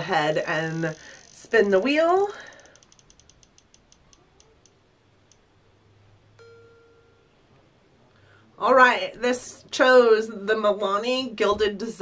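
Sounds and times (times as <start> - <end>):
spinning wheel ticking: 0.7 - 5.4.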